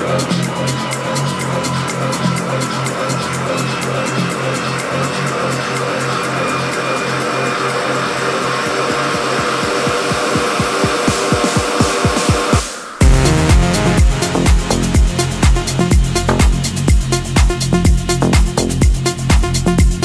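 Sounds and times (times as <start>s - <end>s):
electronic dance music: 0.0s - 20.0s
low drum roll build-up: 11.1s - 17.7s.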